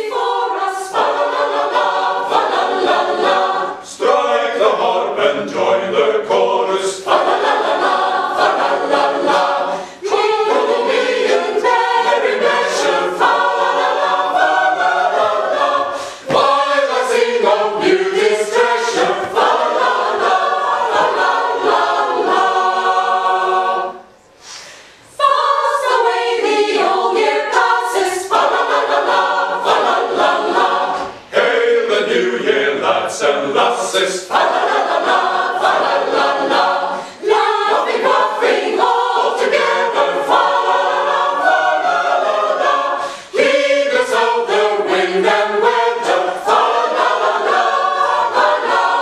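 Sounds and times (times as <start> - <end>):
mixed choir singing: 0.0 - 49.0.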